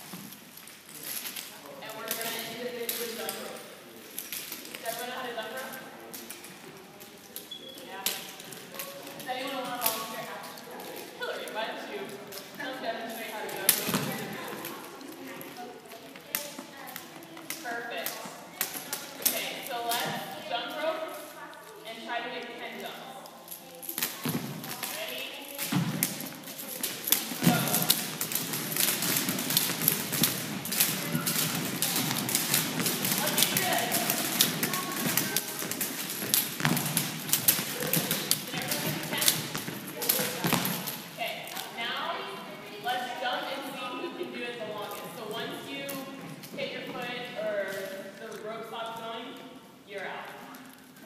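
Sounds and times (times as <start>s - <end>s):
jump ropes slapping wooden floor: 13.4s - 14.9s, 23.9s - 41.8s.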